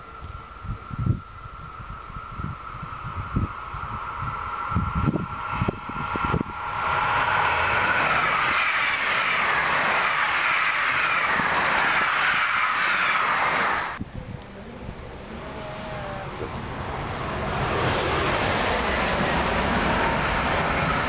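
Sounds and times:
steady high tone: 0.0s - 14.0s
wind gusts on microphone: 0.0s - 21.0s
train wheels rushing on rails: 1.0s - 14.0s, 15.8s - 21.0s.

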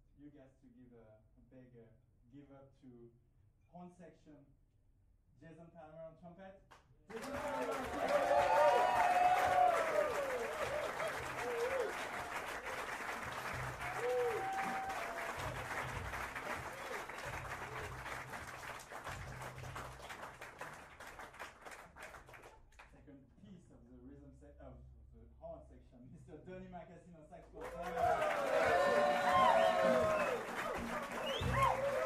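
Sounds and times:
audience applauding and cheering: 7.1s - 22.6s, 27.6s - 32.0s.

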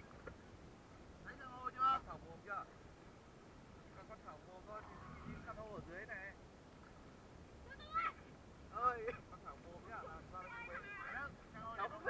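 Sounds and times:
people calling and chattering: 0.0s - 12.0s.

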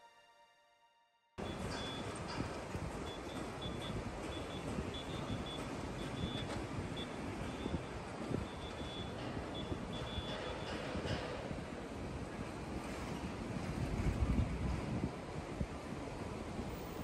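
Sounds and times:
high warning beeps: 1.4s - 2.3s, 3.0s - 10.7s
machinery and traffic rumble: 1.4s - 17.0s
wind buffeting microphone: 1.4s - 17.0s.

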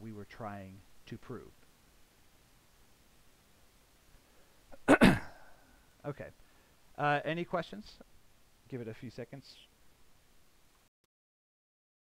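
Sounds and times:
person sneezing: 4.7s - 5.7s.

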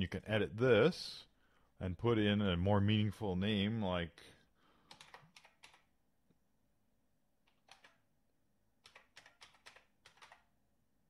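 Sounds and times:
computer keyboard typing: 4.8s - 5.9s, 7.4s - 8.0s, 8.8s - 10.5s.

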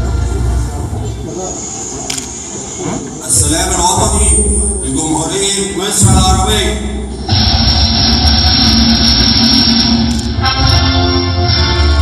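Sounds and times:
high-pitched whine: 0.0s - 10.8s
national anthem music: 2.3s - 12.0s.

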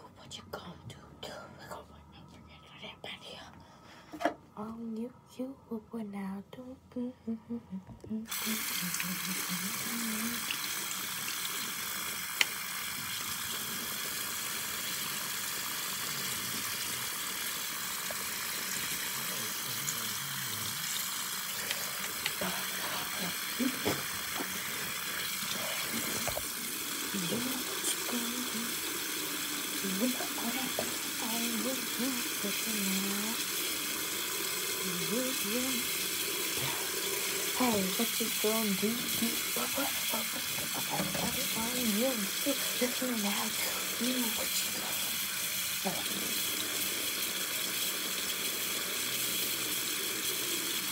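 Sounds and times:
person singing quietly: 4.6s - 10.4s
sink tap running: 8.3s - 50.9s.

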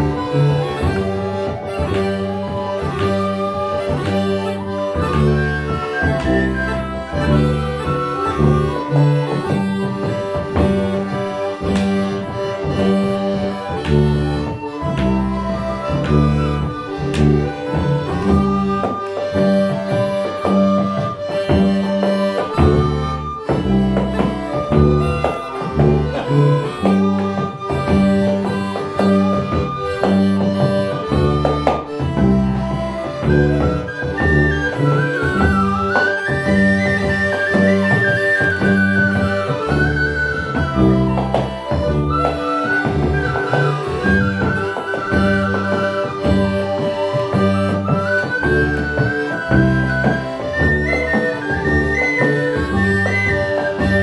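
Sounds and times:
folk ensemble playing: 0.0s - 54.0s.

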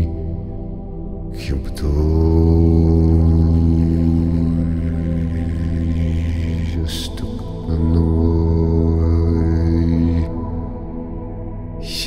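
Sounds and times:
man chanting a deep drone: 0.0s - 12.0s.

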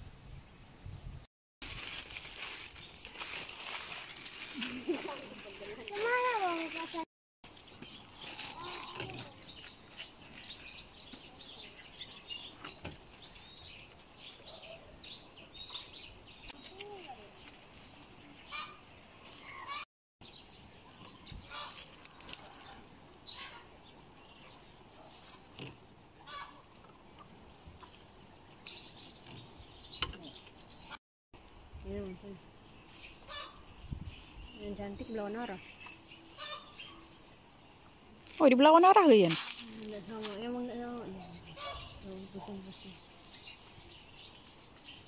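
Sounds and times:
plastic packaging crinkling: 1.6s - 7.1s
small birds chirping: 1.9s - 31.0s, 31.7s - 45.0s.

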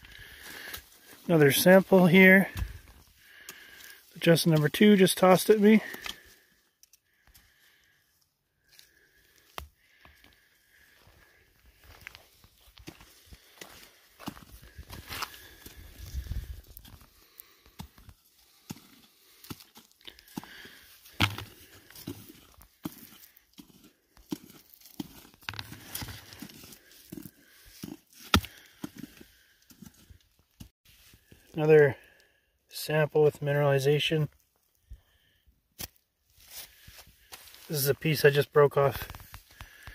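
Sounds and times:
rocks handled in gloved hands: 0.0s - 31.6s, 33.8s - 39.9s
footsteps on gravel: 10.1s - 29.2s.

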